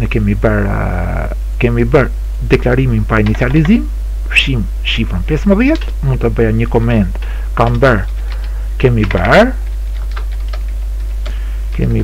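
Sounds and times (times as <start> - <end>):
steady low hum: 0.0 - 12.0
typing on computer keyboard: 7.6 - 11.4.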